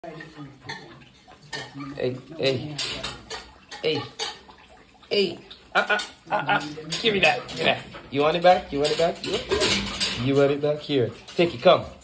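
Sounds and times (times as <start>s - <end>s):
metal grille bars rattling: 6.6s - 11.9s.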